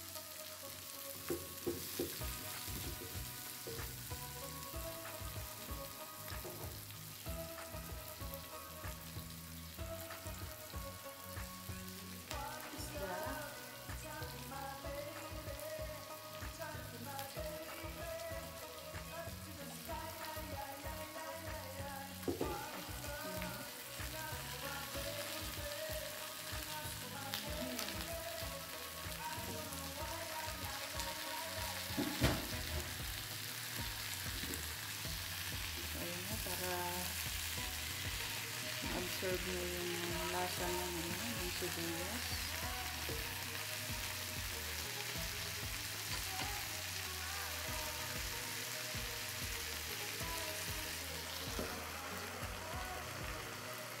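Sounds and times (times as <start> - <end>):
food sizzling in a wok: 0.0 - 54.0.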